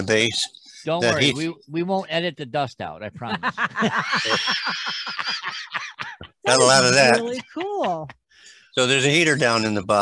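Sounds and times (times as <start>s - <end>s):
man and woman laughing: 3.3s - 8.1s.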